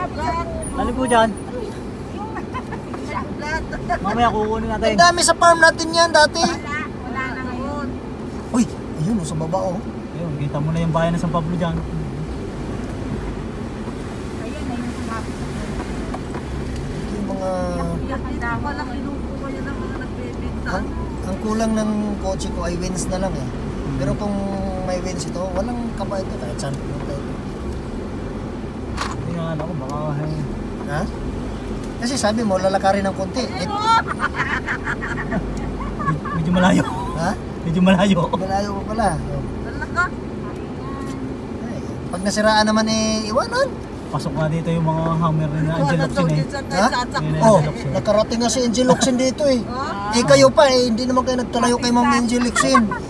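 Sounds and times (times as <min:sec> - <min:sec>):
car engine and tyres rumbling: 0:00.0 - 0:53.0.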